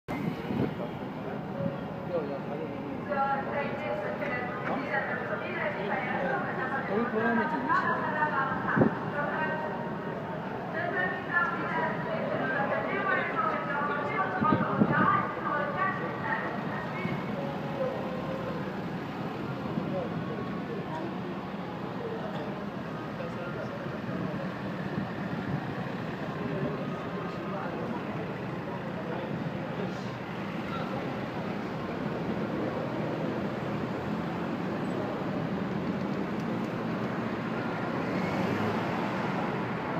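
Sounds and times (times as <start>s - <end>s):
background noise: 0.1s - 39.9s
people's voices: 0.2s - 39.9s
cars driving past: 3.6s - 39.9s.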